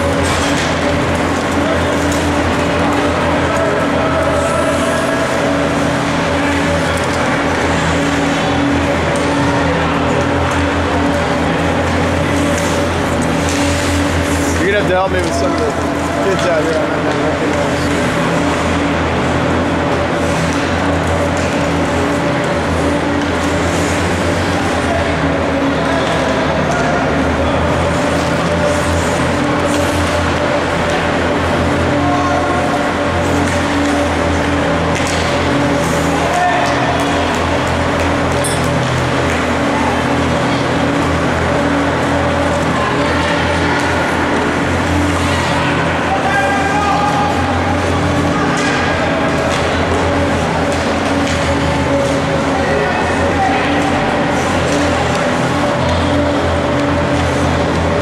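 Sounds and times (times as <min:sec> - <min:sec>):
steady low hum: 0:00.0 - 0:58.0
voices of players and spectators: 0:00.0 - 0:58.0.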